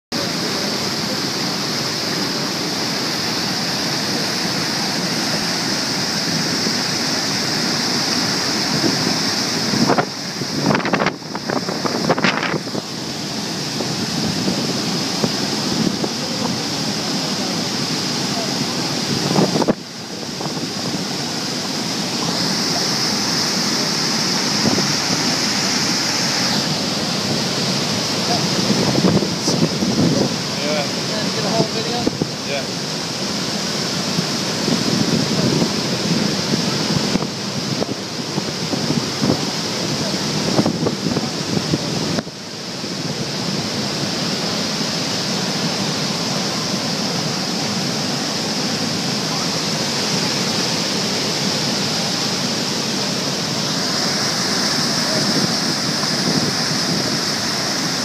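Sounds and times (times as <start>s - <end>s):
river rapids and waterfall rushing: 0.1s - 58.0s
wind buffeting microphone: 8.6s - 16.7s, 19.1s - 21.2s, 24.3s - 25.6s, 28.3s - 30.6s, 34.1s - 42.3s, 55.1s - 58.0s.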